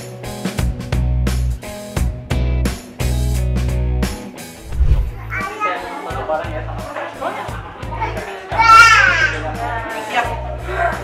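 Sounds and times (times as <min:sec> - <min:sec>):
child's high-pitched shout: 0:05.2 - 0:05.8, 0:08.5 - 0:09.4
children playing and calling out: 0:05.2 - 0:06.2, 0:07.9 - 0:09.6.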